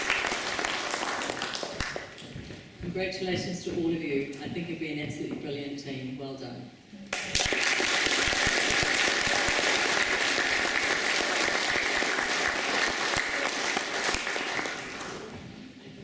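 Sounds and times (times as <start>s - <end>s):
audience applauding: 0.0s - 2.3s, 7.1s - 15.4s.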